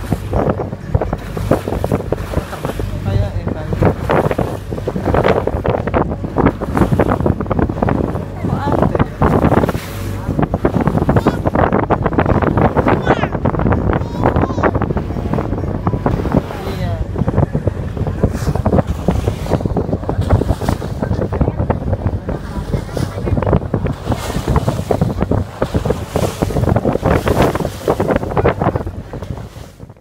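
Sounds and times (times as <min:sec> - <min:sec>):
water rushing along hull: 0:00.0 - 0:30.0
wind buffeting microphone: 0:00.0 - 0:30.0.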